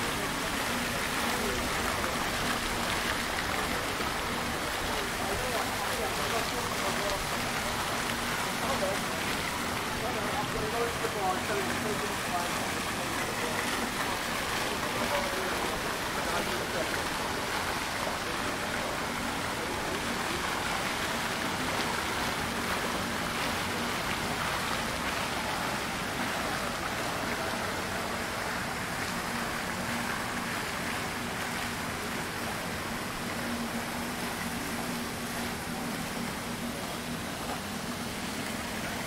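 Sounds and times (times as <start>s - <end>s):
fountain water splashing: 0.0s - 39.0s.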